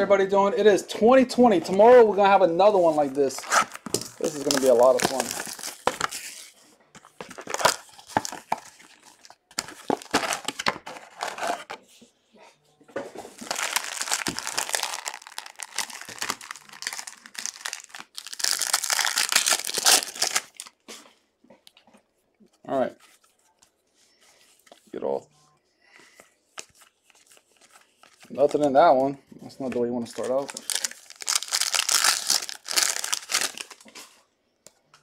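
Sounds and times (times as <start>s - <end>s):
card pack wrappers crinkling: 2.6s - 11.7s, 13.3s - 20.8s, 30.0s - 34.0s.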